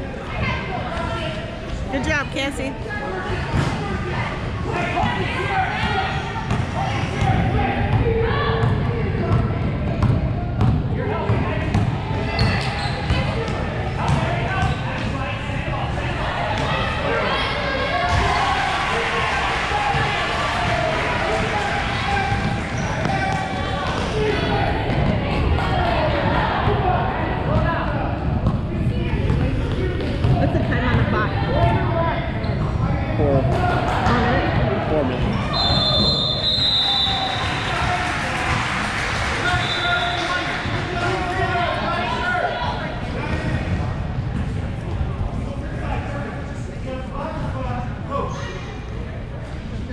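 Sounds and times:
voices in a large gym: 0:00.0 - 0:49.9.

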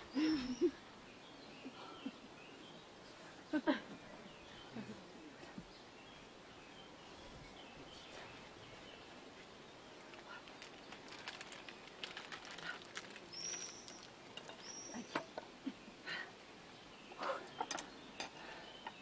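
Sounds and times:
objects clicking and rustling: 0:10.1 - 0:15.4.

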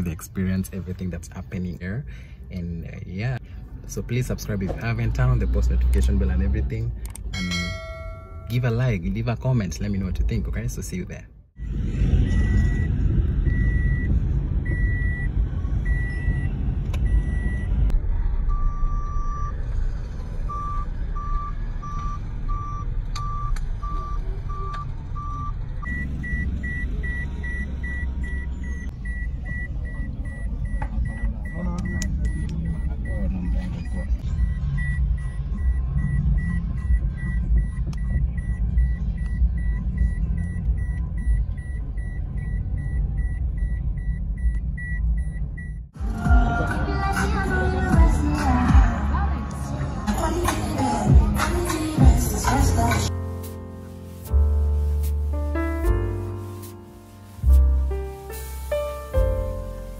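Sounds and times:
car rumbling from inside cabin: 0:00.0 - 0:59.9
electronic warning beep: 0:12.3 - 0:16.5, 0:20.5 - 0:45.9.

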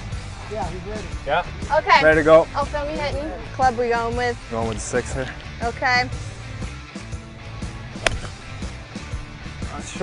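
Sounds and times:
background music: 0:00.0 - 0:10.0
golf club striking ball: 0:07.0 - 0:09.0.

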